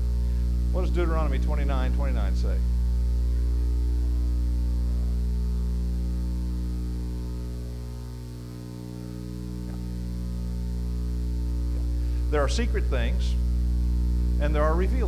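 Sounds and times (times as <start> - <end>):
electrical mains hum: 0.0 - 15.0.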